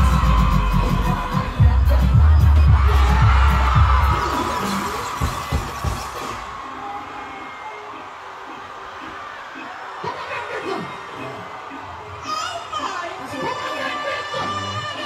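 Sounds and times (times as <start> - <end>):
loud music with heavy bass: 0.0 - 6.4
crowd cheering and screaming: 0.0 - 15.0.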